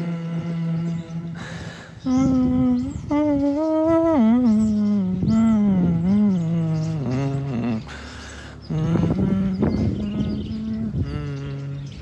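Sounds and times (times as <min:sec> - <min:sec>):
woman vocalizing wordlessly: 0:00.0 - 0:08.0.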